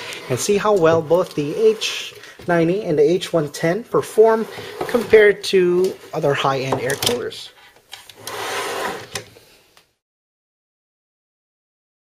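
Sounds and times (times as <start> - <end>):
packaging rubbing and sliding on table: 0.0 - 2.8, 4.0 - 5.4, 8.0 - 9.5.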